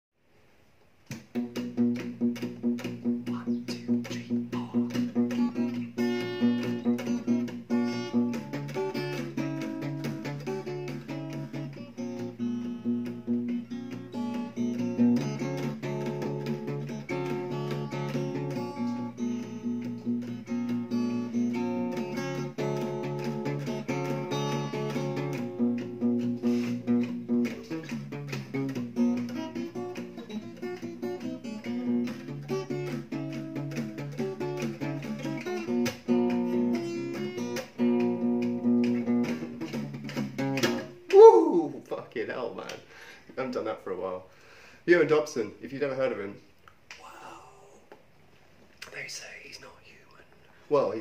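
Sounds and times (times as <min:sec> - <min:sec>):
fingerstyle acoustic guitar: 0:01.1 - 0:41.9.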